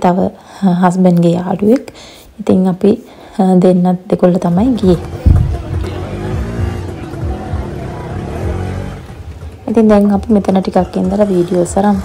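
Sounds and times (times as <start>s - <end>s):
background music: 4.0s - 12.0s
motorcycle engines running: 4.6s - 12.0s.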